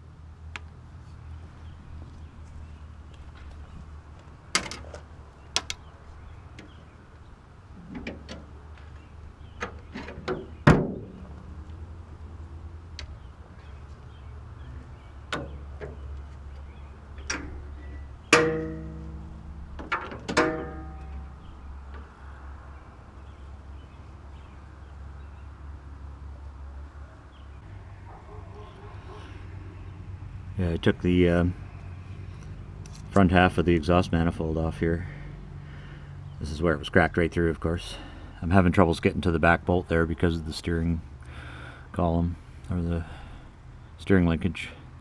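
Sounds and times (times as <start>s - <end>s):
metal clicks and knocks: 15.3s - 22.1s
ringing metal clanks: 17.2s - 21.5s.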